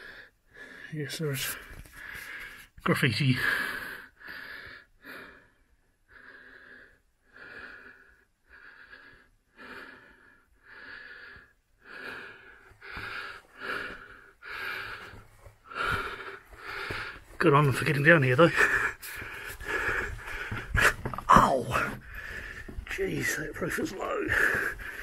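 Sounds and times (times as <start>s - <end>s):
man breathing heavily: 0.0s - 25.0s.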